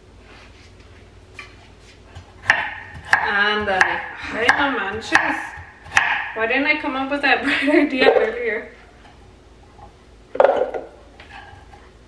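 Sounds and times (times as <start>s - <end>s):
knife chopping on cutting board: 2.1s - 6.4s.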